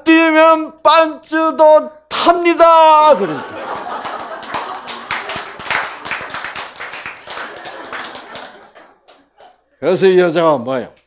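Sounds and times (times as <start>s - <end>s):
audience laughing: 3.2s - 9.6s
audience clapping: 3.4s - 9.6s.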